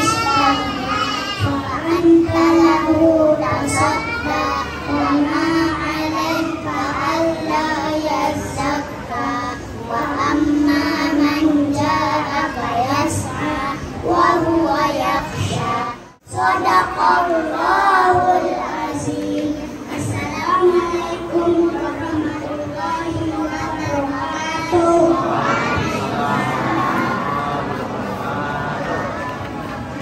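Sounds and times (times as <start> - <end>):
children singing into microphone: 0.0 - 30.0.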